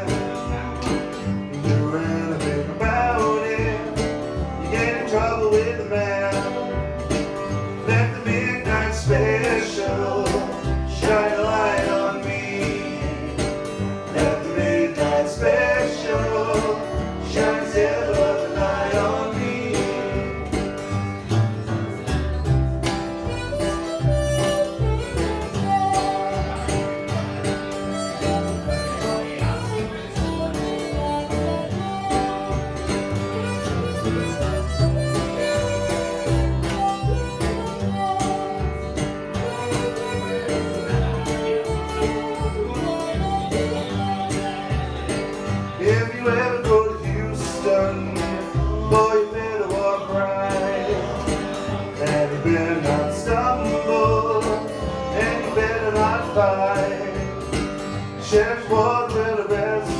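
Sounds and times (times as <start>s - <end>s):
harmonica: 0.0s - 59.9s
plucked double bass: 0.0s - 59.9s
strummed acoustic guitar: 0.0s - 59.9s.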